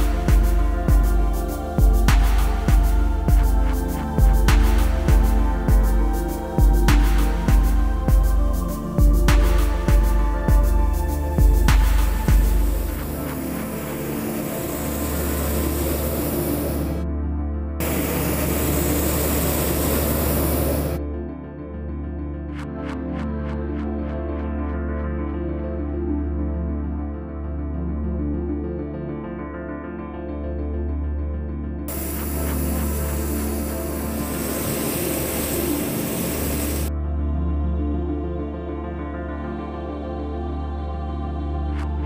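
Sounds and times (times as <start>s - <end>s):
background music: 0.0s - 42.0s
propane burner roaring: 17.8s - 21.0s, 31.9s - 36.9s.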